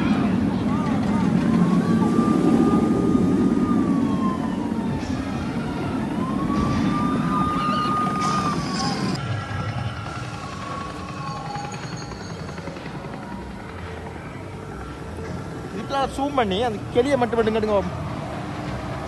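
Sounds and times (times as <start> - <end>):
wailing siren: 0.0 - 16.6
roller coaster rumbling on track: 0.0 - 19.0.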